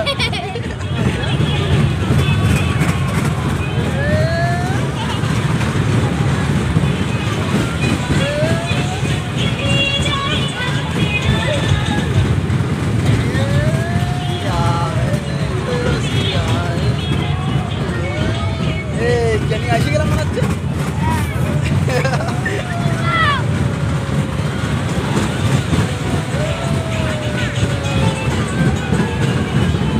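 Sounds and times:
riders whooping: 0.0s - 19.3s, 20.4s - 29.9s
carnival ride rumbling: 0.0s - 29.9s.

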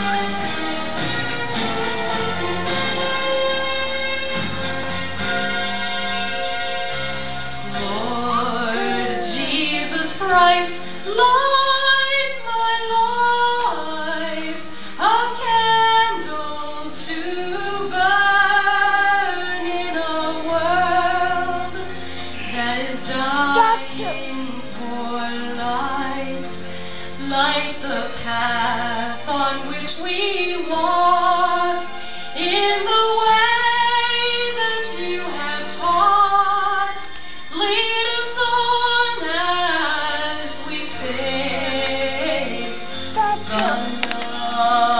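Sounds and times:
soft instrumental accompaniment: 0.0s - 44.9s
instrumental backing: 21.8s - 25.2s, 42.6s - 44.9s
woman singing long notes: 23.5s - 24.4s.

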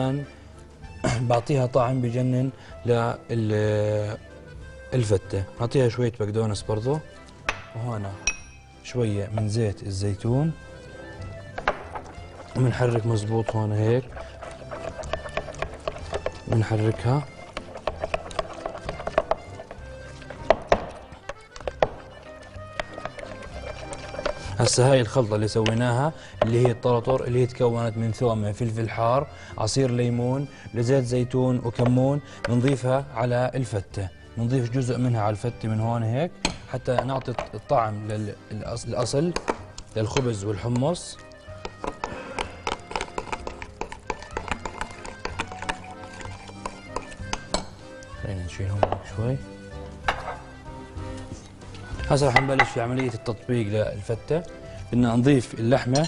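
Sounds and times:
background music: 0.0s - 56.0s
metal spoon clinking in glass bowl: 8.2s - 8.7s, 47.4s - 47.8s, 52.3s - 53.2s
spoon scraping glass bowl: 10.5s - 27.2s, 38.9s - 48.1s, 50.0s - 50.6s, 51.2s - 53.3s.

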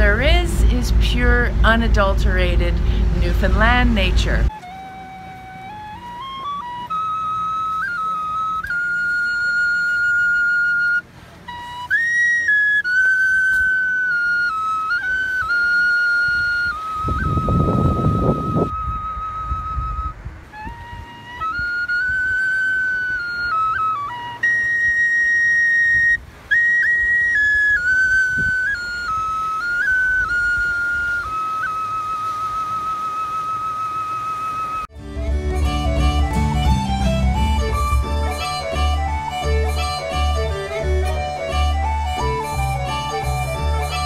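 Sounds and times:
wooden flute melody: 0.0s - 44.0s.

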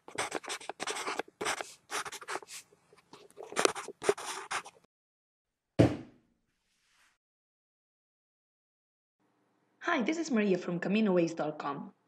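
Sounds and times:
marker pen scratching on paper: 0.0s - 4.9s.

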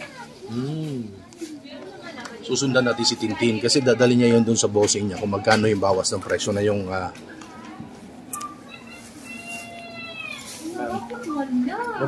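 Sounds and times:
women talking: 1.3s - 2.4s, 10.5s - 12.0s.

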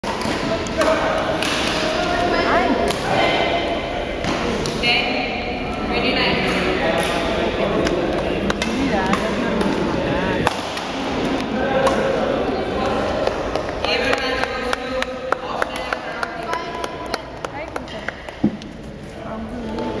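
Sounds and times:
people talking: 0.0s - 18.2s, 18.8s - 20.0s
rackets striking shuttlecock: 6.5s - 12.2s.

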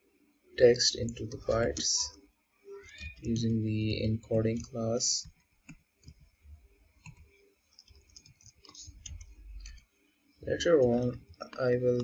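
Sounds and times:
keyboard typing: 1.0s - 2.1s, 2.9s - 9.9s.

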